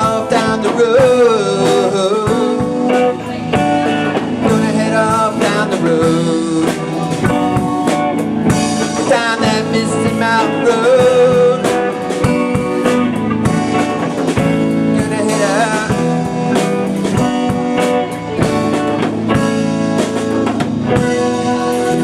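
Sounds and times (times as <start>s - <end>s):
drum kit beat: 0.0s - 22.0s
electric guitars: 0.0s - 22.0s.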